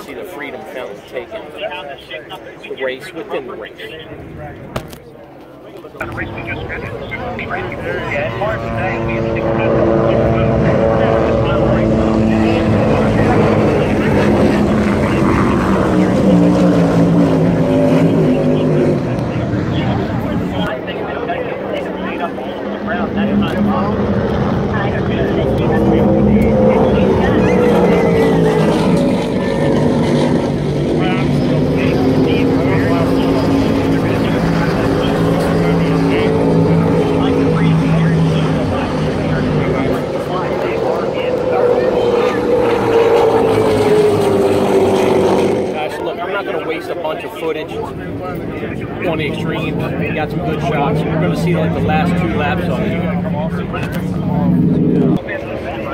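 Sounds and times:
boat engines droning: 0:00.0 - 0:55.9
low-flying helicopter: 0:05.3 - 0:55.9.

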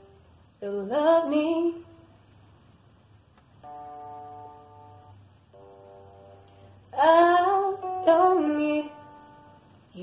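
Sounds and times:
faint click: 0:03.3 - 0:03.5
soft instrumental chords: 0:03.6 - 0:09.9.

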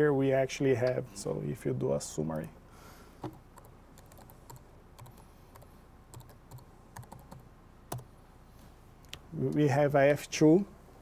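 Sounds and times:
keyboard typing: 0:03.2 - 0:08.1.

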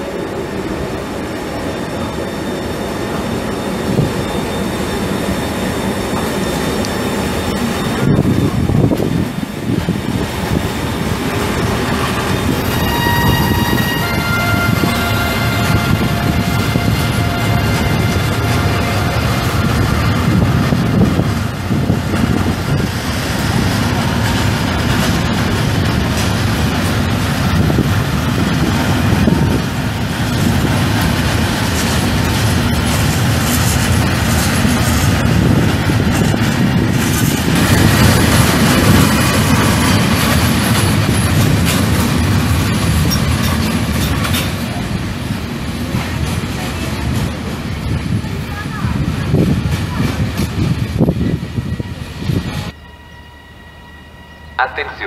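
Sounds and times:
train wheels rumbling on rail: 0:00.0 - 0:54.6
high steady ringing tones: 0:01.2 - 0:08.8.

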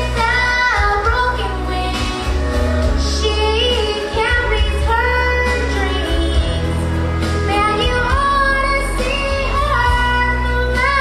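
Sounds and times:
girl singing country ballad: 0:00.0 - 0:11.0
instrumental accompaniment with bass: 0:00.0 - 0:11.0.

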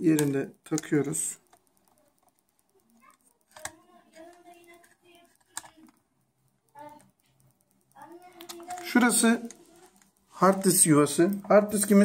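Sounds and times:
sharp clicks: 0:00.0 - 0:12.0.

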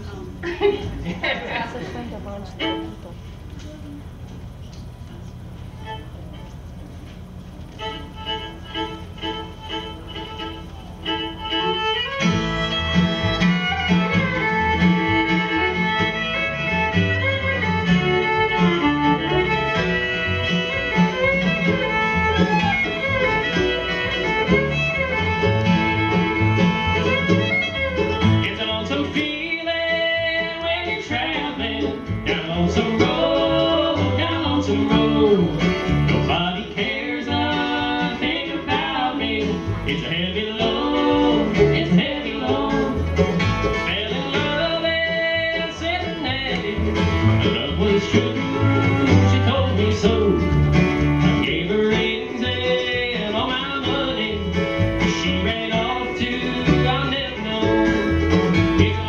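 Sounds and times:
bluegrass string band playing: 0:00.0 - 0:59.0
fiddle bowing: 0:01.5 - 0:04.2, 0:05.3 - 0:59.0.

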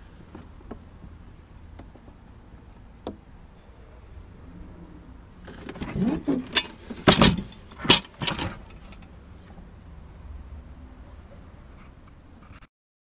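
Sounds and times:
objects knocking and rattling: 0:05.4 - 0:09.1.

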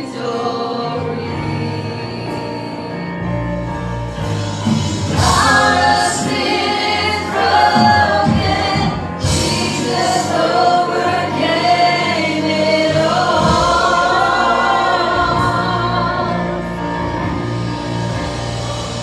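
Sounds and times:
bass guitar: 0:00.0 - 0:19.0
choir singing gospel: 0:00.0 - 0:19.0.

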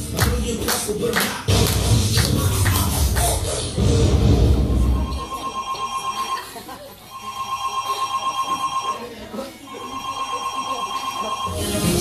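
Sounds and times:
dance music beat: 0:00.0 - 0:05.3
telephone ringing tone: 0:05.0 - 0:12.0.

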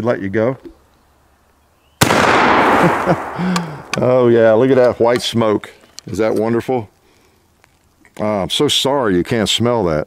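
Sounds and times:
rifle shot with rolling echo: 0:02.0 - 0:04.5.

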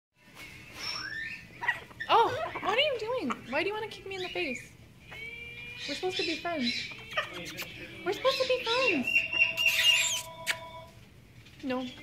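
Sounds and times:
macaw squawk: 0:00.8 - 0:10.7.

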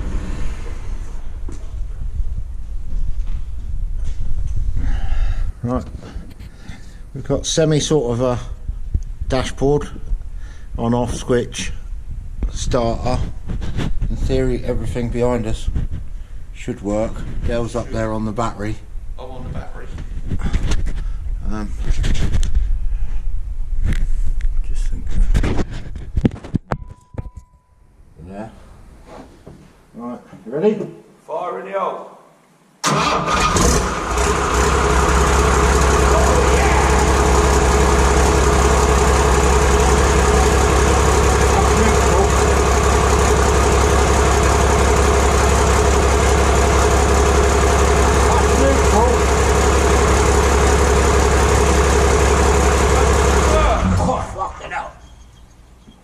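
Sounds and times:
steady low rumble: 0:00.0 - 0:20.4, 0:34.5 - 0:54.5
diesel engine idling loudly: 0:33.6 - 0:54.4
man's voice: 0:36.0 - 0:37.1, 0:41.3 - 0:42.5, 0:48.0 - 0:49.3.

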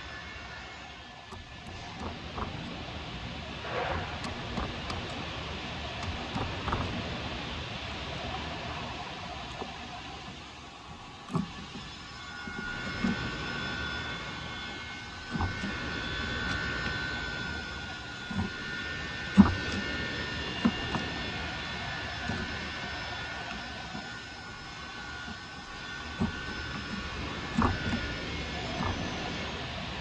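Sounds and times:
high-pitched mechanical whine: 0:00.0 - 0:30.0
chisel paring wood: 0:11.3 - 0:13.8, 0:25.2 - 0:28.2.

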